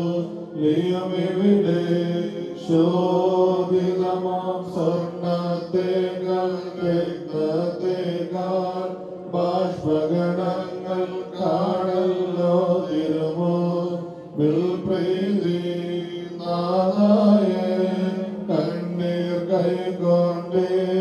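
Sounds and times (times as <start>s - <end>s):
priest chanting into a microphone: 0.0s - 21.0s.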